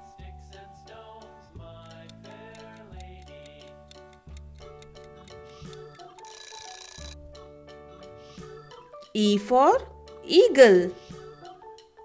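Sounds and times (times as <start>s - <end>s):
light background music: 0.0s - 12.0s
bright ringing alarm: 6.3s - 7.2s.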